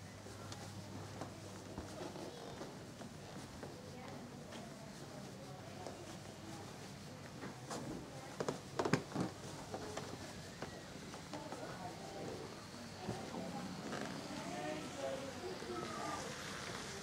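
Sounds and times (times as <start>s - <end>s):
voices murmuring: 9.5s - 17.0s.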